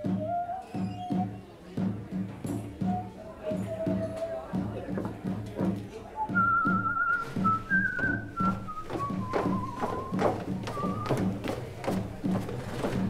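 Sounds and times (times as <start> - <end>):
person whistling a melody: 0.0 - 1.6, 2.7 - 4.7, 6.2 - 11.4
bass and drums beat: 0.0 - 13.0.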